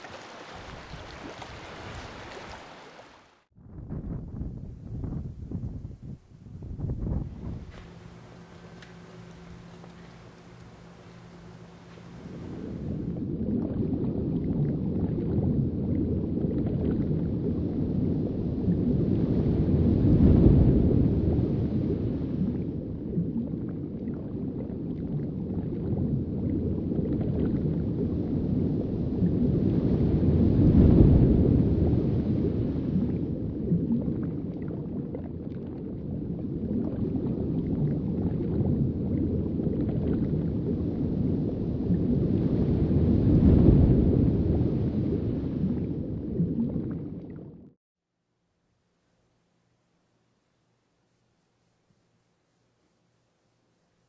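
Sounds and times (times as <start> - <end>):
muffled underwater rumble: 3.6 - 47.8.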